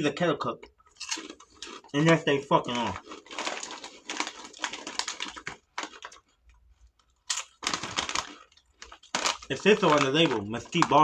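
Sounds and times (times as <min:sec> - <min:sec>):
chip bag crinkling: 0:00.9 - 0:11.0.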